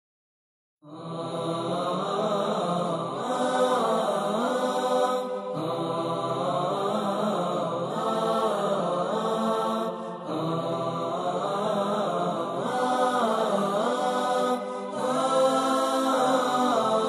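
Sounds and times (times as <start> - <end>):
melodic vocal chant: 0.8 - 17.0.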